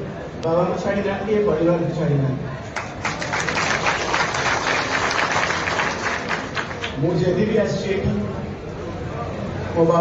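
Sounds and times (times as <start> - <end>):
large crowd clapping: 2.7 - 7.2.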